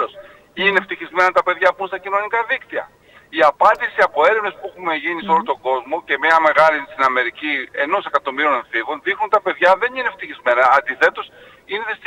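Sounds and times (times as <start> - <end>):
man talking over phone: 0.0 - 12.0.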